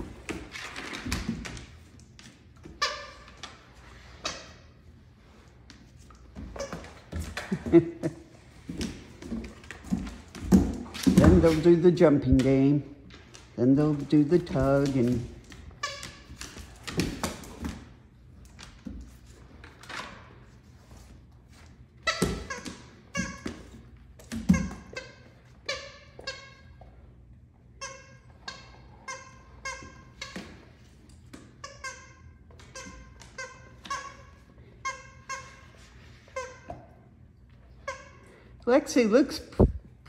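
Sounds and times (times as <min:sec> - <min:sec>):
dog toy squeaking: 0:15.8 - 0:16.4, 0:27.8 - 0:30.6, 0:31.6 - 0:36.8.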